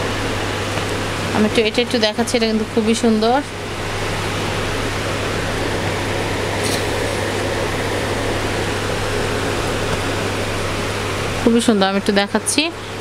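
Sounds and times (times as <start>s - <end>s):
fan hiss and hum: 0.0s - 13.0s.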